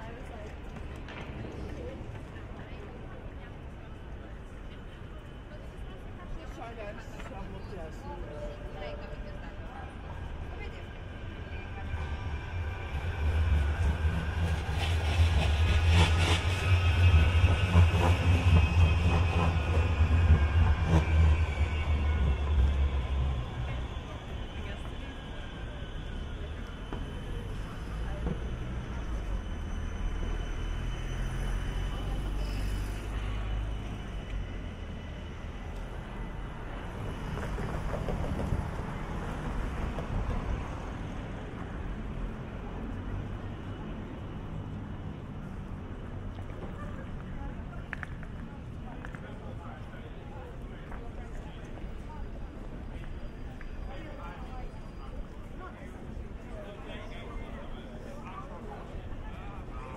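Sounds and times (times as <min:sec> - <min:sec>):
street traffic: 0:00.0 - 0:59.9
tram passing with rumble and whine: 0:00.0 - 0:59.9.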